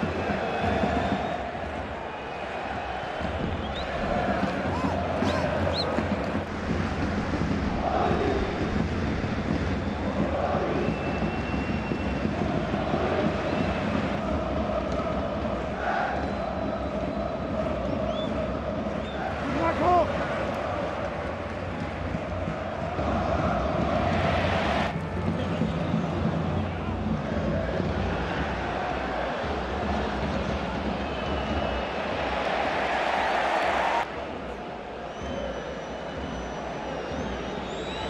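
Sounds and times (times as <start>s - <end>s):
stadium crowd chanting and shouting: 0.0s - 38.0s.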